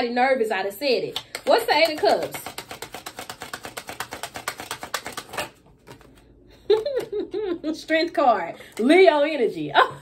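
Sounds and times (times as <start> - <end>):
cards being shuffled: 1.1 - 7.1.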